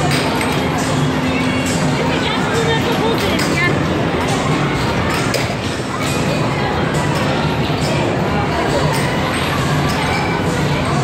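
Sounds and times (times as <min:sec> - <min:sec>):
people's voices: 0:00.0 - 0:11.0.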